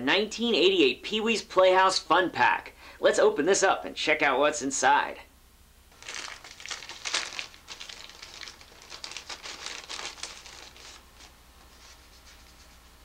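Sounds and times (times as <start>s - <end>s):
wrapper being torn open: 5.9s - 11.4s.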